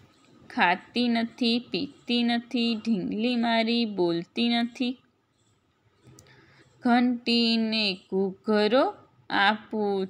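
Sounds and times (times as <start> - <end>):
woman reciting: 0.4 - 5.2, 6.8 - 10.0.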